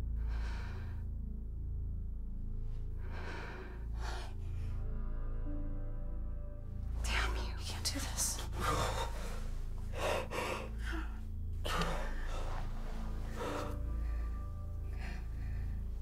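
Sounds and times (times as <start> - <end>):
low steady music score: 0.0 - 16.0.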